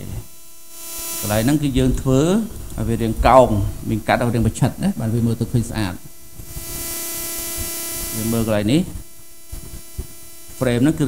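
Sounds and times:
electrical hum: 0.0 - 11.0.

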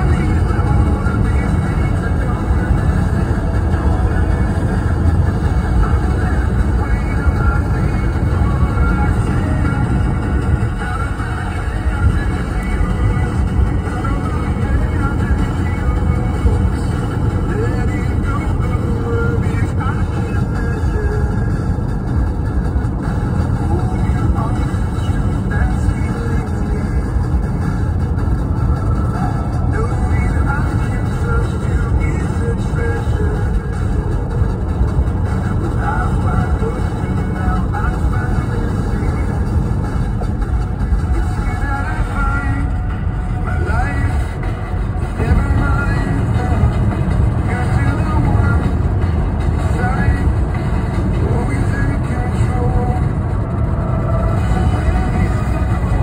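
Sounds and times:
music playing: 0.0 - 56.0
road and engine rumble: 0.0 - 56.0.

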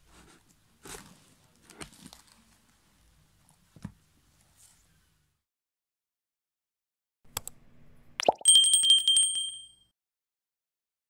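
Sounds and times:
bright bell ringing rapidly: 8.4 - 9.8.

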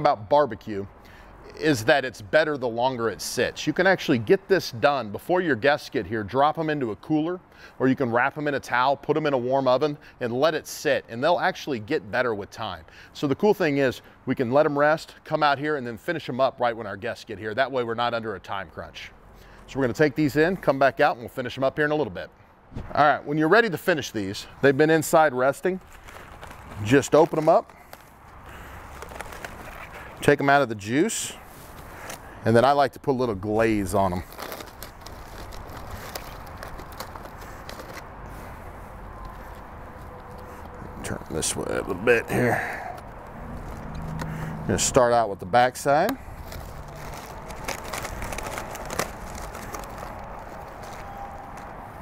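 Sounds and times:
soft handling noises: 24.4 - 32.4, 33.5 - 44.5, 45.6 - 52.0
aluminium foil crinkling: 25.4 - 30.4, 33.5 - 41.8, 42.6 - 44.4, 46.0 - 52.0
low outdoor rumble: 34.0 - 52.0.

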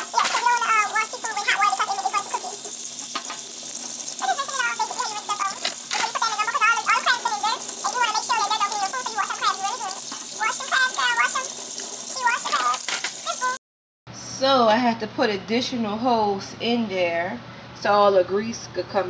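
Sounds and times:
tap water running into sink: 0.0 - 13.6
high wavering voice-like sounds: 4.2 - 11.5.

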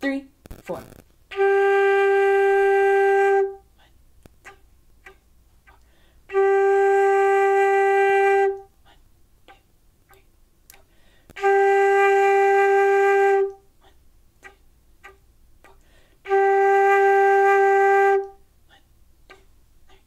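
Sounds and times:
flute playing long held notes: 1.3 - 3.7, 6.3 - 8.7, 11.4 - 13.7, 16.2 - 18.4.

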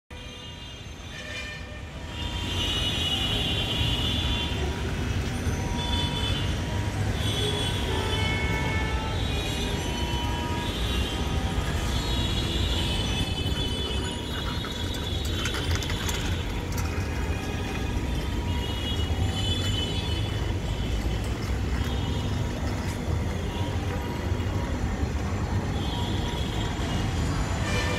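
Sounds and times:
distant traffic rumble: 8.7 - 27.9.

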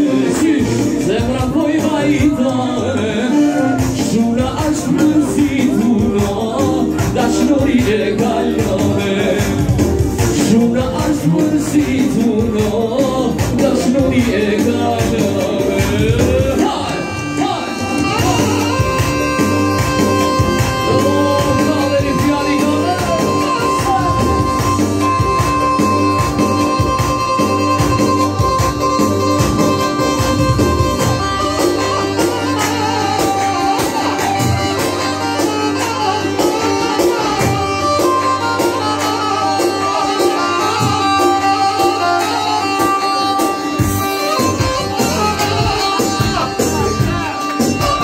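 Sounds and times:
live band melody: 0.0 - 48.0
steady drum beat: 3.7 - 39.0, 42.8 - 48.0.

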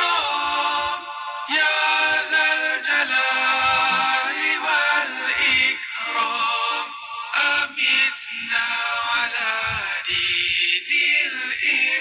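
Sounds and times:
person singing devotional chant: 0.0 - 12.0.

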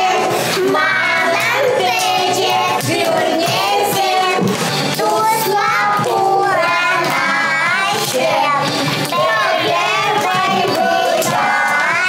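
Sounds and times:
children singing together: 0.0 - 12.0.

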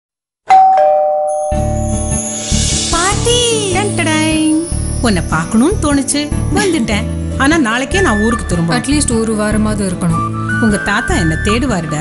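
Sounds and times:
doorbell ding-dong chime: 0.5 - 2.6.

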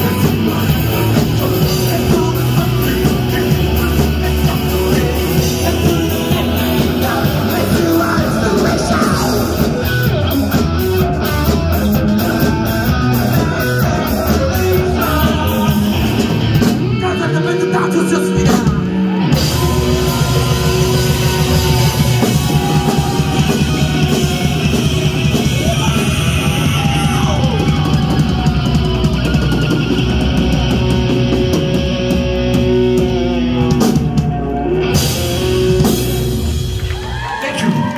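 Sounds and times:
bass guitar: 0.0 - 37.9
drums: 0.0 - 37.9
electric guitar lead: 0.0 - 37.9
live rock band playing: 0.0 - 37.9.

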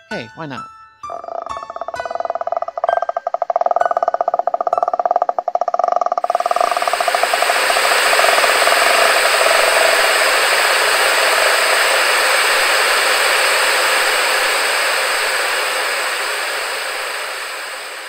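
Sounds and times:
loud static hiss: 6.2 - 18.0.

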